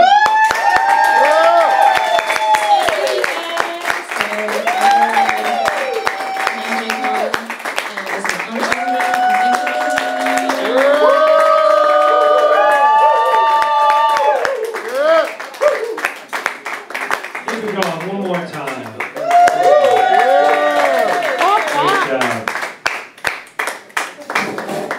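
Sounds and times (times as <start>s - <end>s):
voices cheering in whoops: 0.0s - 3.4s, 4.5s - 7.4s, 8.6s - 16.1s, 19.2s - 22.1s
audience clapping: 0.0s - 24.9s.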